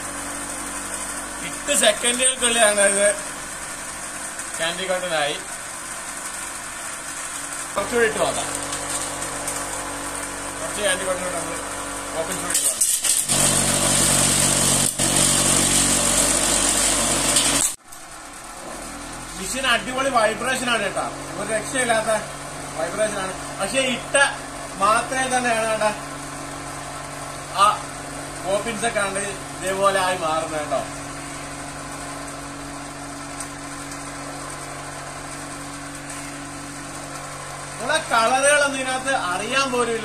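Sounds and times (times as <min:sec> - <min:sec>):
cotton candy machine humming: 0:00.0 - 0:40.0.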